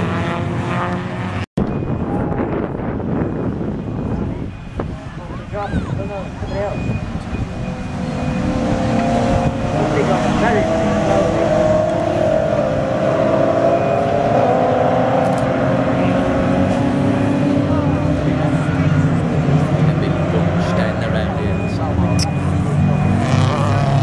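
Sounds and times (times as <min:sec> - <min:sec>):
race car engines: 0:00.0 - 0:24.0.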